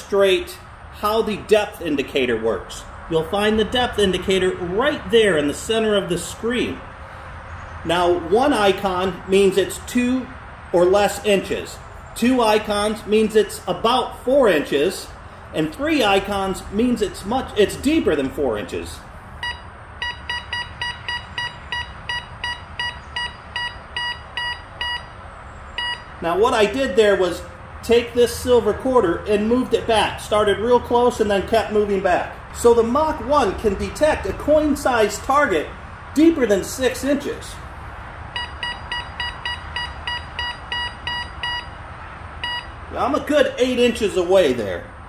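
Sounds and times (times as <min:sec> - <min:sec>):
metal detector short beeps: 0:19.4 - 0:25.2, 0:25.8 - 0:26.1, 0:38.3 - 0:41.8, 0:42.4 - 0:42.8.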